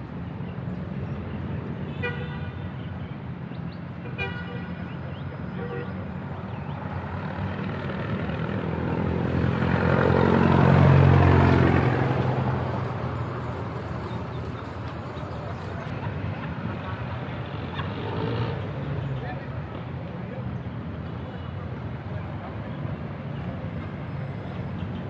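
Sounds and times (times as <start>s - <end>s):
vehicle engine humming: 6.3s - 16.4s
vehicle passing close: 6.8s - 14.3s.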